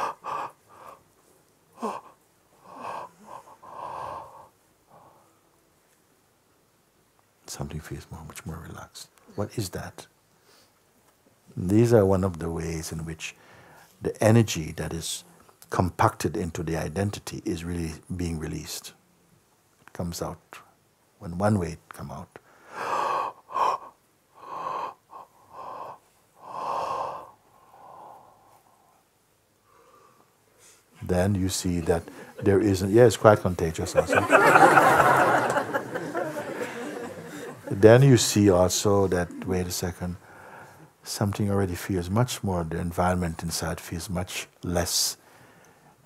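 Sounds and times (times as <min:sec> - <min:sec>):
man breathing heavily: 0:00.0 - 0:01.1, 0:01.8 - 0:05.4, 0:22.5 - 0:29.0, 0:32.0 - 0:32.6, 0:40.2 - 0:40.9
man yawning: 0:01.8 - 0:04.5.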